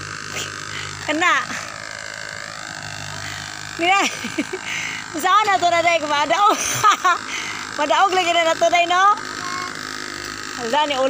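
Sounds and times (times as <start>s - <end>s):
excavator engine hum: 0.0s - 11.0s.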